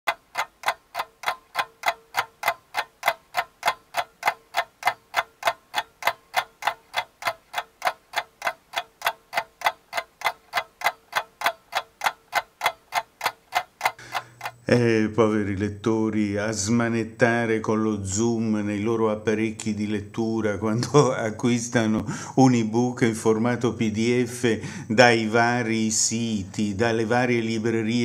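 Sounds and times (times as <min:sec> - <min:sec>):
clock ticking: 0:00.1 - 0:14.8, 0:16.6 - 0:28.0.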